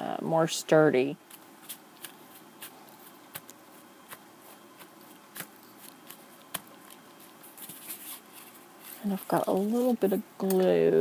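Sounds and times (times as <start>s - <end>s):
hands handling card stock: 1.3s - 10.1s
soft paper rustles: 1.3s - 10.2s.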